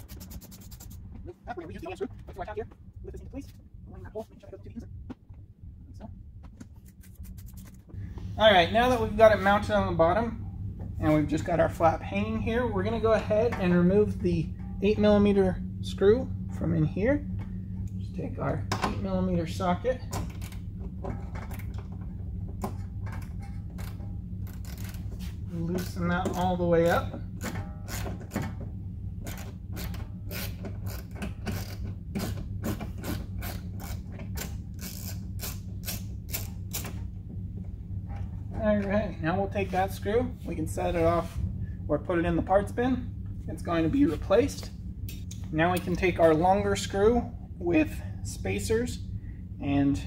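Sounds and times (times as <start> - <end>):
person speaking: 0.0 - 5.0
steady low hum: 0.0 - 50.0
ratchet clicking: 33.0 - 36.9.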